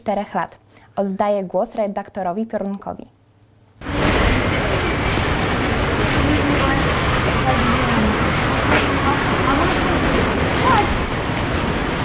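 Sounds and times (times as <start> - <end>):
constant outdoor rush: 3.9 - 12.0
faint voices: 5.8 - 11.1.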